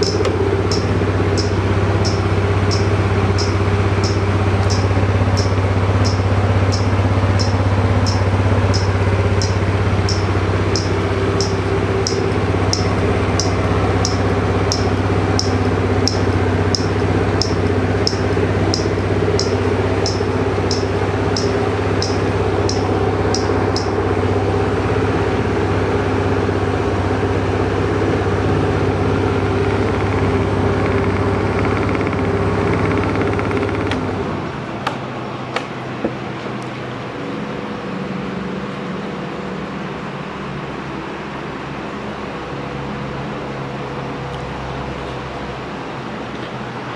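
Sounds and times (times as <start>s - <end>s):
sharp high ticking: 0.0s - 24.4s
scooter engine idling: 0.0s - 38.4s
engine switched off: 0.0s - 46.9s.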